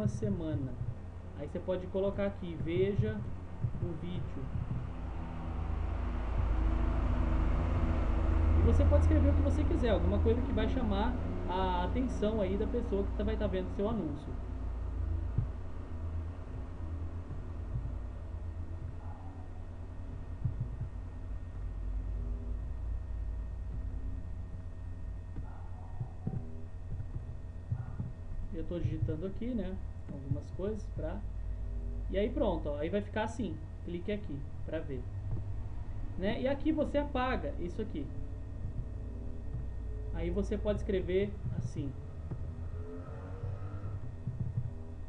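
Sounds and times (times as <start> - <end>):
keyboard typing thumps: 0.0 - 1.1, 2.5 - 5.0, 15.3 - 15.7, 16.5 - 18.1, 20.1 - 21.0, 25.4 - 28.2, 38.6 - 39.8, 43.4 - 44.8
low electrical hum: 0.0 - 45.0
low steady rumble: 0.0 - 45.0.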